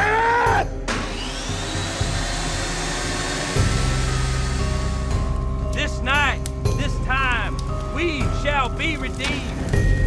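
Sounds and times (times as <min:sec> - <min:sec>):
dark trailer music: 0:00.5 - 0:10.0
table saw whirring: 0:00.9 - 0:05.2.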